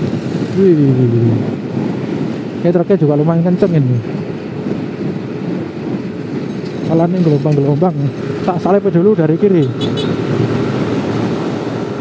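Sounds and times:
motorcycle riding at speed: 0.0 - 12.0.

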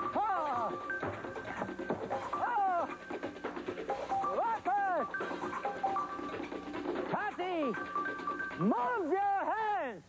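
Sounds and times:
stage-show music: 0.0 - 9.8.

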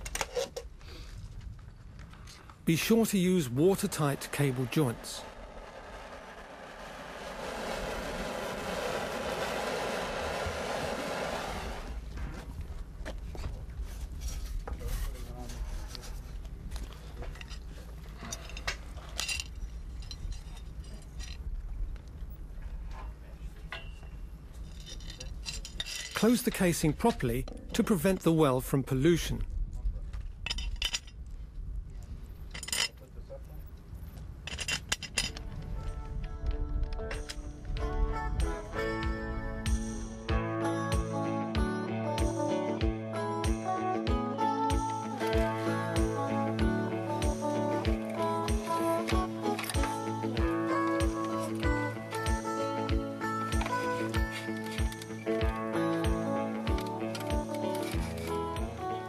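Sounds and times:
cable scraping and clinking: 0.0 - 0.7, 14.2 - 21.5, 23.8 - 27.2, 34.4 - 36.0, 53.2 - 55.5, 56.7 - 58.9
heat gun rushing: 3.6 - 12.0
low rumble: 3.8 - 13.0
music with plucked tones: 36.4 - 59.0.

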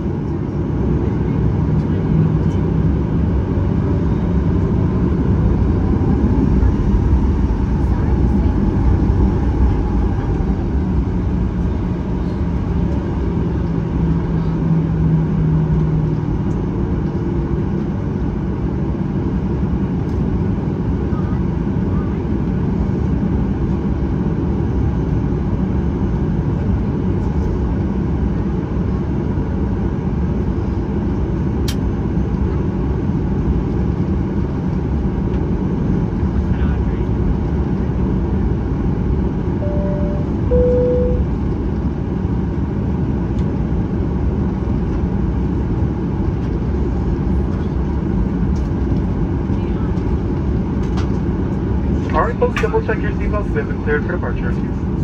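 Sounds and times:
jet engines low rumble: 0.0 - 55.0
two-tone cabin chime: 39.6 - 41.4.

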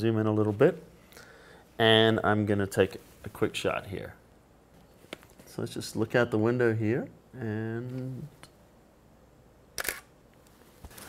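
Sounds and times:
camera shutter double click: 9.8 - 10.1.

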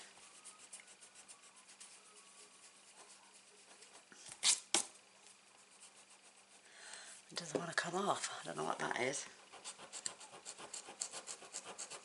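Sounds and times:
eraser rubbing on paper: 0.0 - 4.6, 5.6 - 6.6, 9.4 - 12.0.

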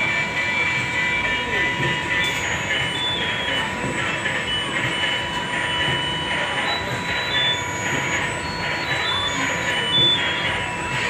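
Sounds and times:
hubbub of voices: 0.0 - 11.0
steady high electronic tone: 0.0 - 11.0
short electronic beeps: 1.1 - 11.0.

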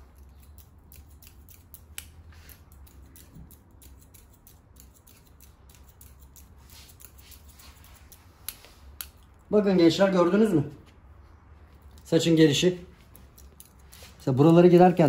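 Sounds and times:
scissors snipping hair: 0.0 - 9.5, 11.8 - 15.0.

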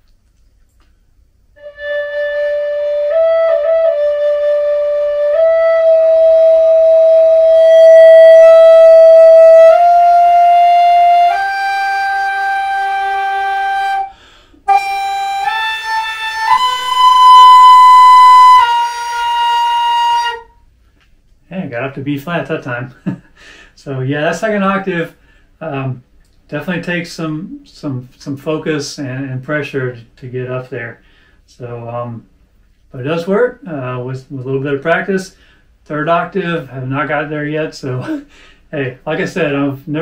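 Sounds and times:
flute playing long held notes: 1.6 - 20.6.

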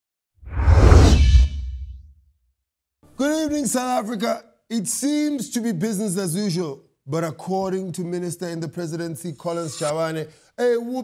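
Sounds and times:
whoosh: 0.4 - 2.1.

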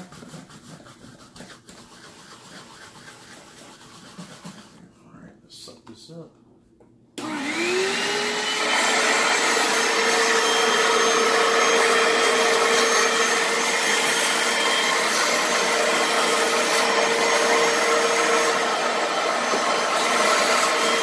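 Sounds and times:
upholstery cleaner motor whine: 7.2 - 21.0.

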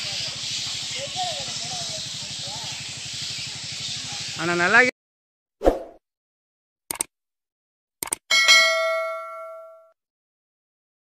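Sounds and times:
button clicks: 8.0 - 8.2
bright bell ding: 8.3 - 10.0.

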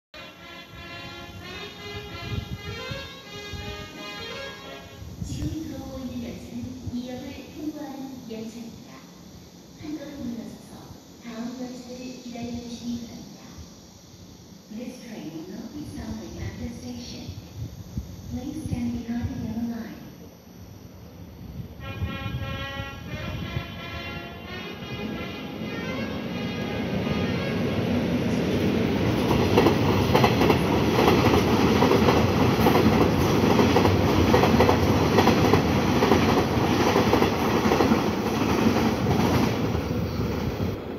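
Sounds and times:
train horn: 0.2 - 5.3, 21.8 - 28.0
train rushing past: 21.8 - 40.9
train wheels clattering over rails: 28.3 - 40.8.

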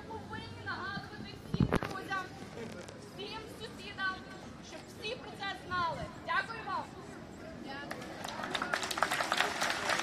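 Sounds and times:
voices: 0.0 - 10.0
crowd applauding: 8.0 - 10.0.

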